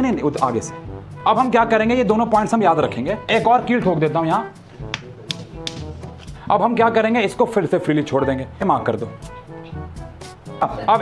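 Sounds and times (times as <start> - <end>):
quiet background music: 0.0 - 11.0
person speaking: 10.6 - 11.0.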